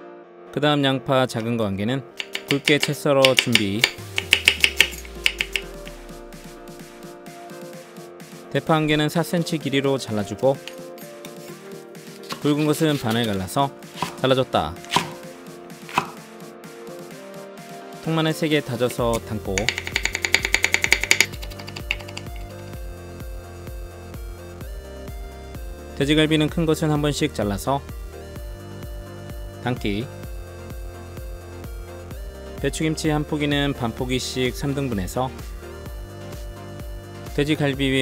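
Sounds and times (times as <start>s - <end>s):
knife knocking on cutting board: 2.2s - 5.9s, 14.0s - 14.2s, 14.9s - 15.2s, 15.9s - 16.2s, 19.6s - 22.4s
background music with bass beat: 2.2s - 38.0s.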